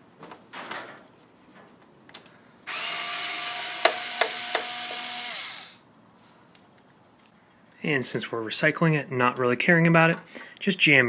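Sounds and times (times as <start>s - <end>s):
power drill motor whine: 2.7s - 5.8s.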